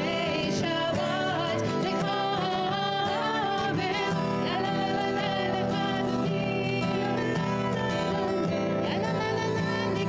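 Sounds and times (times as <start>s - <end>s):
acoustic guitar strumming: 0.0s - 10.0s
women singing together: 0.0s - 10.0s.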